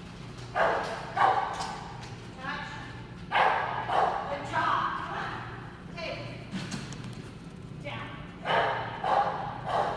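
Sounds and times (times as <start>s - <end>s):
dog barking: 0.6s - 1.6s, 3.3s - 4.3s, 8.4s - 9.9s.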